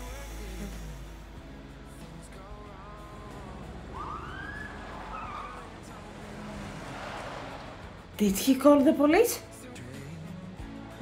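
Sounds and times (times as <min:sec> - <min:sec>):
low street rumble: 0:00.0 - 0:11.0
police siren wailing: 0:03.9 - 0:06.0.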